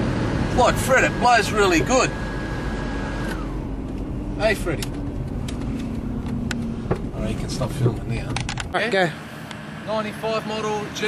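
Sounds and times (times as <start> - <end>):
car engine and road rumble: 0.0 - 11.0
constant hum: 0.0 - 11.0.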